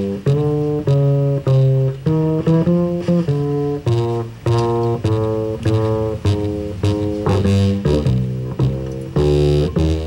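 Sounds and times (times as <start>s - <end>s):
chords: 0.0s - 10.0s
plucked double bass: 0.0s - 10.0s.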